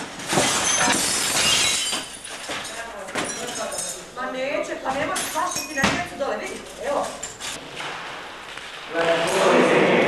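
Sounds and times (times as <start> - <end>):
broken glass and debris clattering: 0.1 - 4.1, 5.0 - 6.1.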